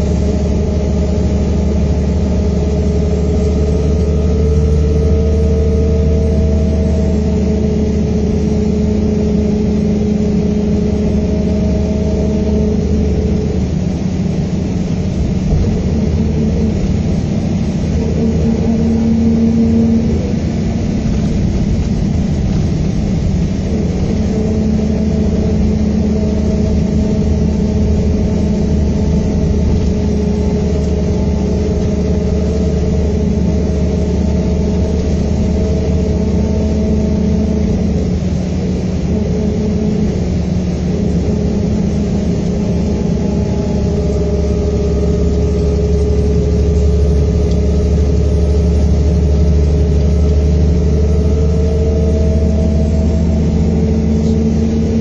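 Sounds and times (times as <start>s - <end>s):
diesel engine running: 0.0s - 55.0s
road and tyre noise: 0.0s - 55.0s.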